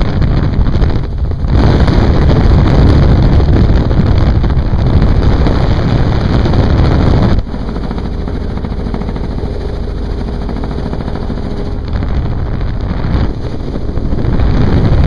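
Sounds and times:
helicopter engine: 0.0 - 15.0
helicopter rotor chop: 0.0 - 15.0
wind buffeting microphone: 0.0 - 15.0.

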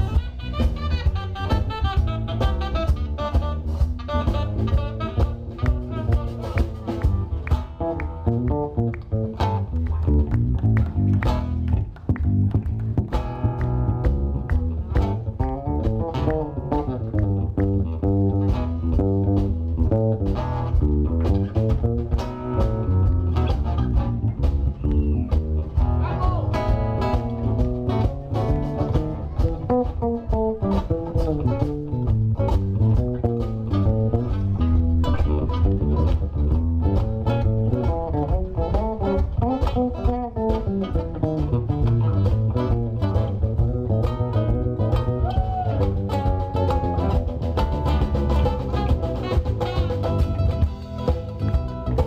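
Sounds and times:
bass guitar: 0.0 - 52.0
drums: 0.0 - 52.0
electric guitar lead: 0.0 - 52.0.

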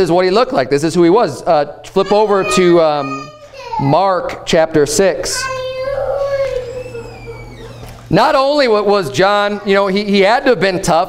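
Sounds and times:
child whining: 2.0 - 3.9, 5.4 - 8.0.

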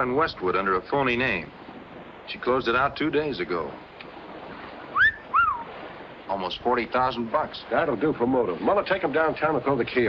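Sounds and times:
steady background hiss: 0.0 - 10.0
person whistling two notes: 5.0 - 5.7.

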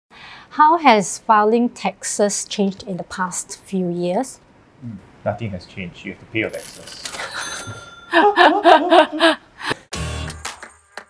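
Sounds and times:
person laughing: 7.7 - 9.8.

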